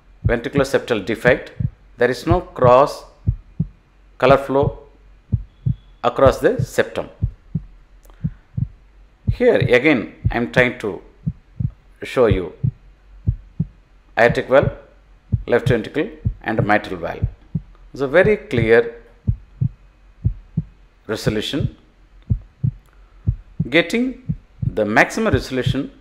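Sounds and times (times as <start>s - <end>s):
faint low hum: 0.0s - 26.0s
heartbeat thumps: 0.0s - 26.0s.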